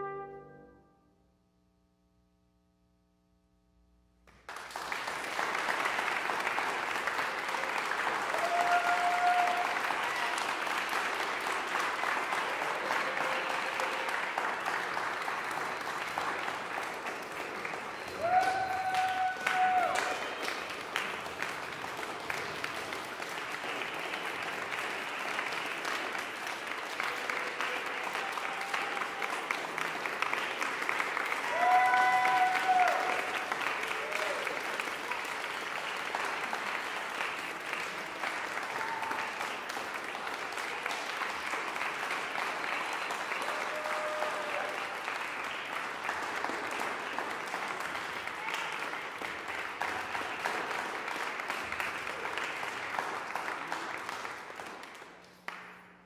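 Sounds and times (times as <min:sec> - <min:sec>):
audience applauding: 0:04.3 - 0:56.0
cheer: 0:05.3 - 0:16.5, 0:17.6 - 0:21.1, 0:25.4 - 0:54.2.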